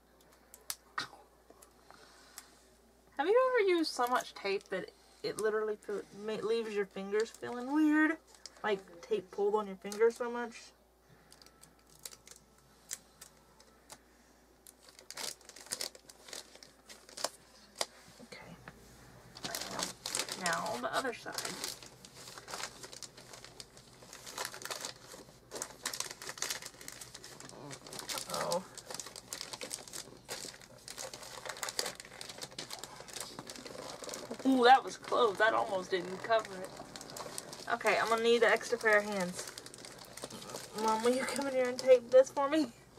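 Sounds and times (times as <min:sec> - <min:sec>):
wrapping paper crinkling: 0:11.2 - 0:14.0, 0:14.6 - 0:18.2, 0:19.4 - 0:42.7.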